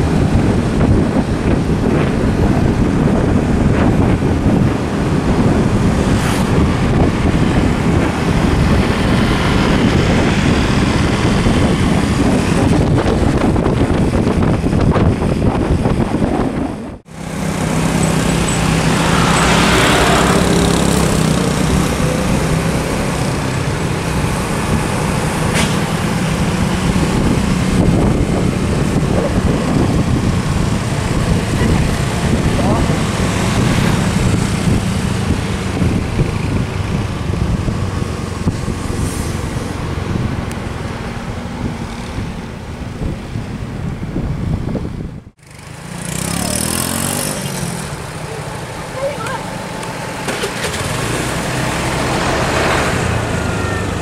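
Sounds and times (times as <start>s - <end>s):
bus engine close by: 0.0s - 54.0s
road traffic engines: 0.0s - 54.0s.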